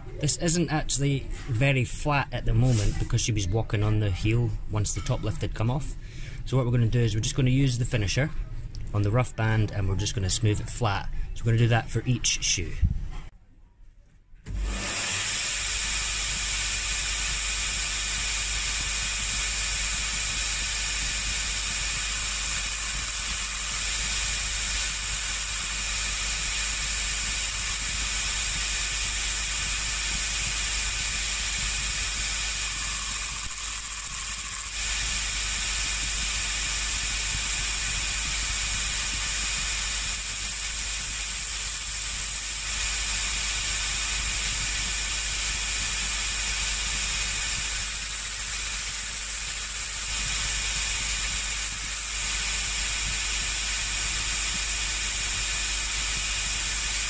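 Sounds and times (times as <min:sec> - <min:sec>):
sanding band grinding heel: 0:15.0 - 0:57.0.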